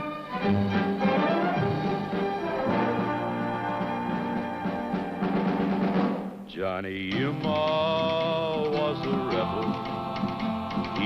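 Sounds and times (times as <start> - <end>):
orchestral theme music: 0.0 - 6.5, 7.1 - 11.0
timpani drum roll: 0.6 - 11.0.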